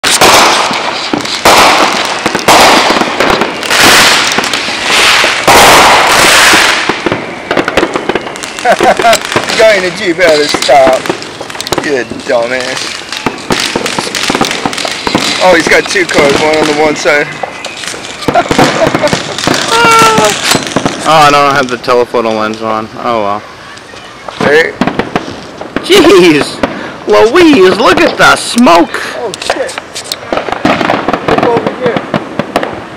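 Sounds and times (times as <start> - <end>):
fireworks bangs: 0.0 - 32.9
fireworks crackle: 0.0 - 32.9.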